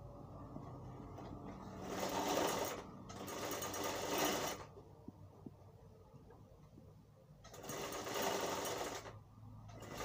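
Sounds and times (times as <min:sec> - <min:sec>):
sewing machine stitching: 0:01.6 - 0:04.7, 0:07.4 - 0:10.0.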